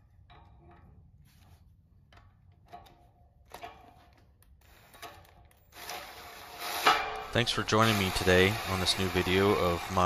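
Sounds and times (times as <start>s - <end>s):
scraping and creaking: 0.0s - 10.0s.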